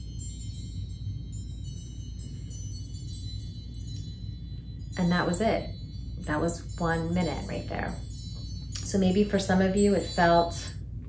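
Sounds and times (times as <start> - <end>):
wind-chime timer alarm: 0.0 - 11.0.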